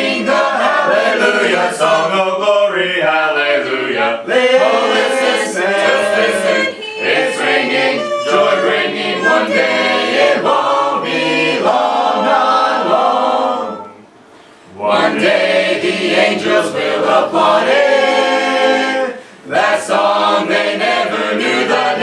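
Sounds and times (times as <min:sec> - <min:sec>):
choir singing gospel in harmony: 0:00.0 - 0:14.0, 0:14.7 - 0:22.0.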